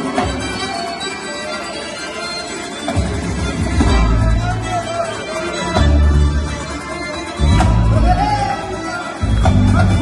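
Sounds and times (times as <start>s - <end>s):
accordion: 0.0s - 10.0s
heavy bass: 7.4s - 8.3s, 9.2s - 10.0s.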